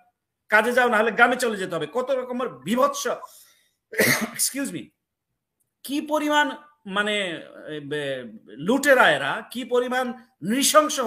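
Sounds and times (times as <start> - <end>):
man speaking: 0.0 - 5.0, 5.8 - 11.0
man clearing his throat: 3.9 - 4.6.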